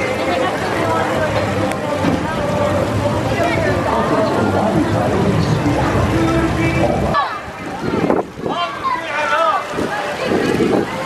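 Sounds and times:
people talking and calling out: 0.0 - 11.0
wind gusts on microphone: 7.4 - 9.0, 9.6 - 11.0.

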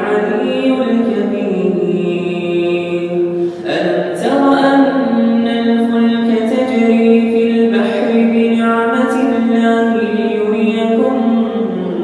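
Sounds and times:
man chanting melodically: 0.0 - 12.0
breath: 3.3 - 3.7.

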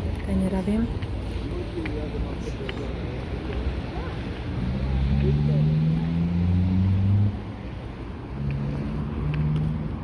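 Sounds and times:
vehicle engine droning: 1.5 - 10.0.

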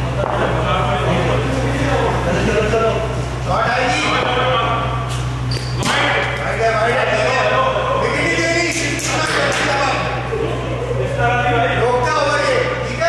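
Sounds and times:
players calling out: 0.0 - 13.0
steady low hum: 0.0 - 13.0.

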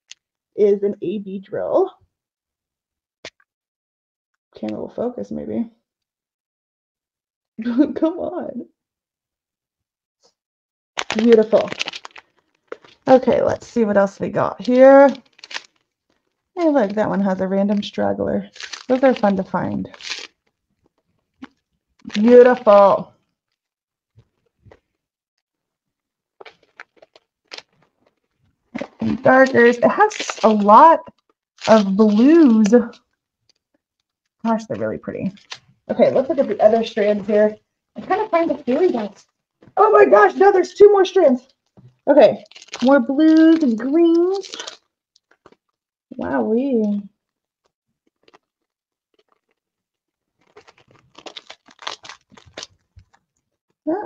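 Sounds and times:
plastic bags crinkling: 11.0 - 13.4, 14.5 - 23.0, 26.4 - 33.6, 35.3 - 39.2, 41.6 - 45.8, 48.0 - 53.4.

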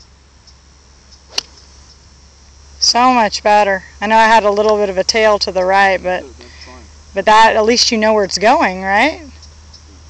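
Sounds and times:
golf club striking ball: 1.2 - 1.9.

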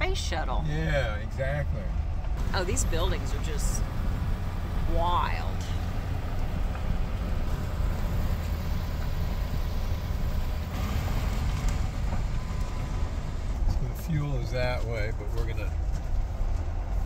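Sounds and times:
engine and road rumble: 0.0 - 17.0
tyres on gravel: 2.0 - 17.0.

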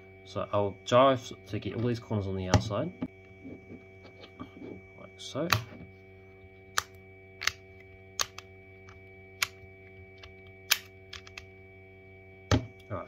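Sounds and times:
steady hum: 0.0 - 13.0
magnetic puzzle pieces clicking: 10.7 - 11.4.

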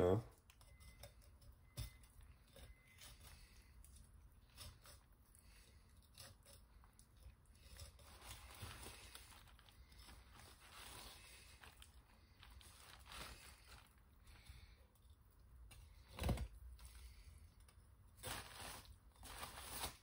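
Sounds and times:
knife cutting and scraping fish: 0.4 - 17.3.

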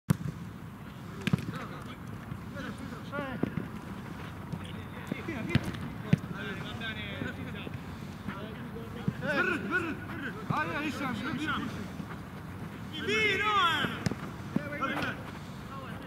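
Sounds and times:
players shouting: 1.0 - 16.0
ball being kicked: 5.4 - 6.4.

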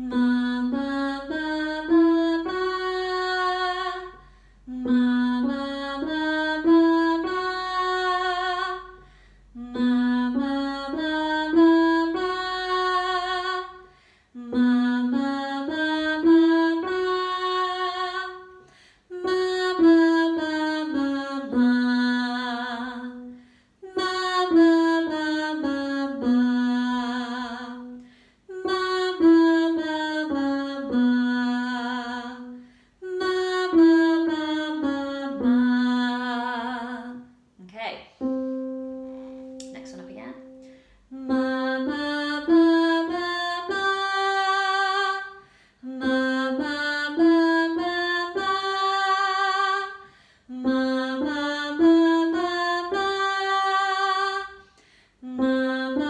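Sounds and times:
woman singing vocal exercise: 0.0 - 38.4, 39.0 - 54.6, 55.2 - 56.0
digital piano notes: 38.1 - 44.6.

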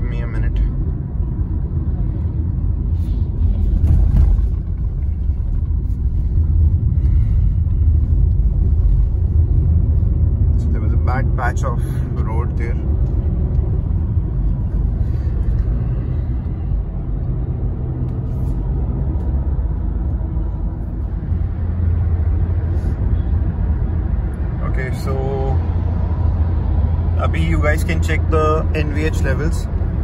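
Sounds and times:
car road and engine rumble: 0.0 - 30.0.

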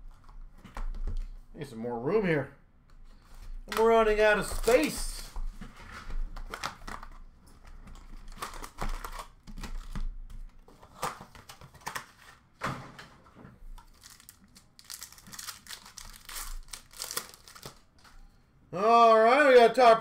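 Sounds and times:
pack wrappers crinkling: 6.4 - 10.0, 13.8 - 18.2.

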